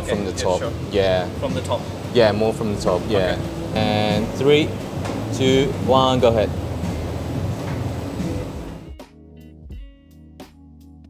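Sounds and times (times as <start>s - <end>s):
kitchen hum and hiss: 0.0s - 8.9s.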